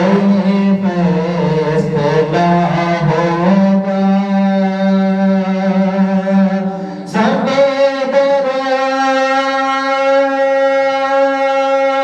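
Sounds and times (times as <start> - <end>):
man singing a long note: 0.0 - 12.0.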